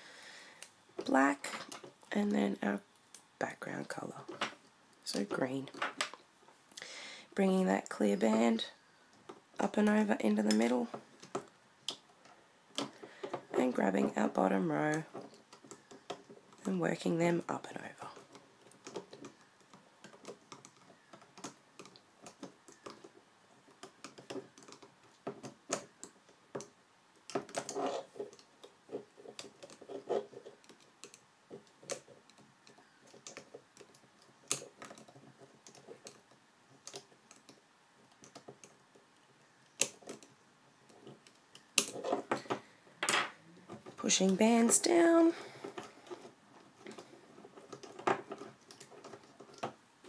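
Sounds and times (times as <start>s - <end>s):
loom hook clicking on plastic pegs: 18.0s - 23.1s, 23.7s - 42.6s.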